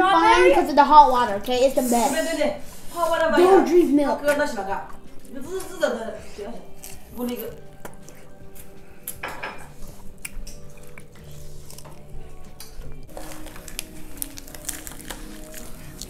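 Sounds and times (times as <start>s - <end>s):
quiet background music: 0.0s - 16.0s
chopsticks and dishes clinking: 8.0s - 13.7s.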